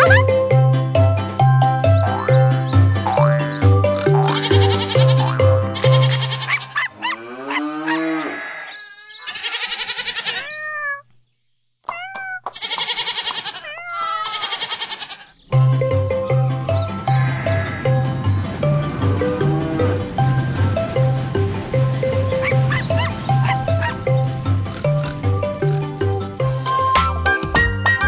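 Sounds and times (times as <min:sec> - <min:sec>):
children's song with bouncing bass: 0:00.0 - 0:06.7, 0:15.5 - 0:28.0
cartoon cow mooing: 0:02.1 - 0:11.0
cartoon sheep bleating: 0:02.1 - 0:11.0, 0:11.9 - 0:15.3.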